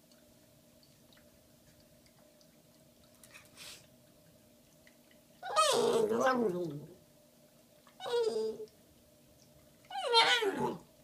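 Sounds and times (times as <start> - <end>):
puppy vocal call: 5.4 - 6.9, 8.0 - 8.7, 9.9 - 10.9.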